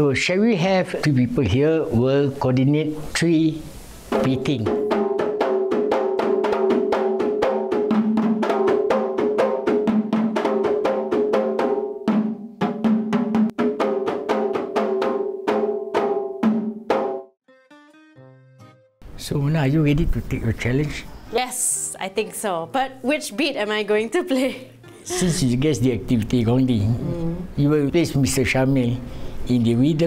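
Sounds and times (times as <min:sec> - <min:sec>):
hand-beaten frame drums: 0:04.0 - 0:17.3.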